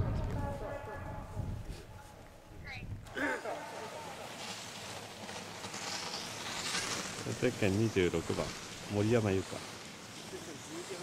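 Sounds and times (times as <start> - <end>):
skis carving across snow: 0.0 - 11.0.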